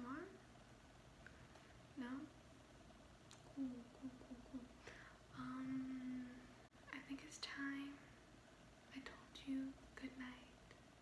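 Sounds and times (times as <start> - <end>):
woman whispering softly: 3.5 - 8.1, 8.9 - 10.6.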